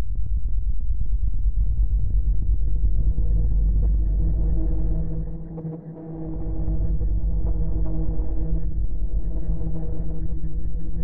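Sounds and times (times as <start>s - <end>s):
low ambient drone: 0.0s - 11.0s.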